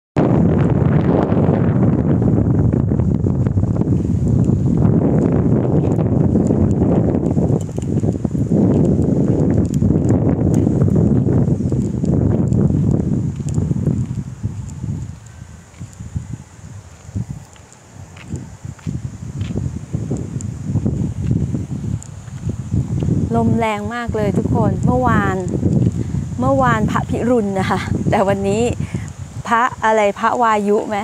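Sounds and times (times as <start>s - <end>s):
wind buffeting microphone: 0.2s - 31.0s.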